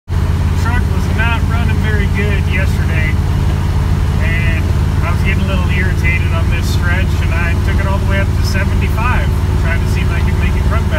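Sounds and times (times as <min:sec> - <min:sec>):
truck engine and road noise: 0:00.1 - 0:10.9
man talking: 0:00.5 - 0:03.3, 0:04.1 - 0:10.9.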